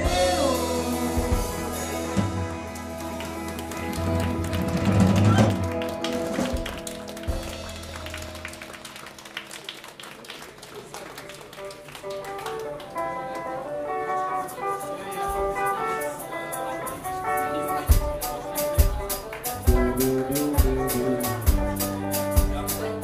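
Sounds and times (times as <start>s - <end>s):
live band playing: 0.0s - 9.9s, 10.9s - 23.0s.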